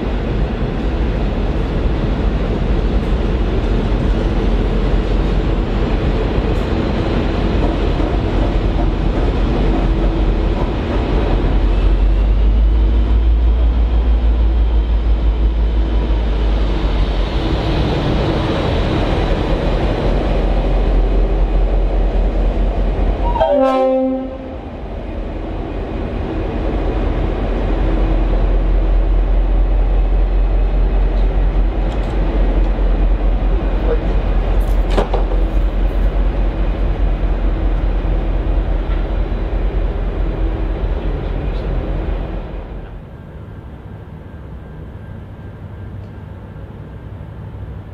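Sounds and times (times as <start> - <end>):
diesel locomotive engine drone: 0.0 - 47.9
train wheels rumbling: 0.0 - 47.9
train horn toot: 23.2 - 24.7.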